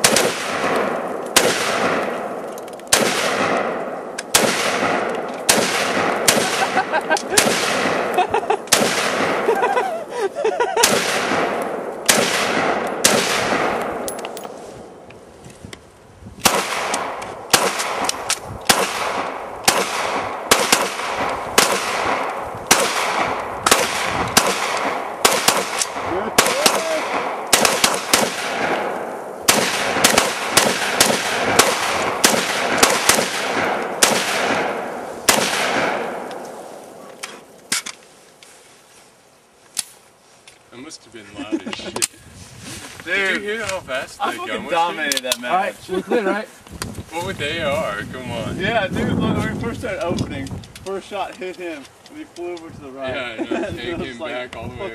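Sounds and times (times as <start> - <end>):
rapid gunfire with echo: 0.0 - 9.5, 10.8 - 14.1, 16.4 - 36.4.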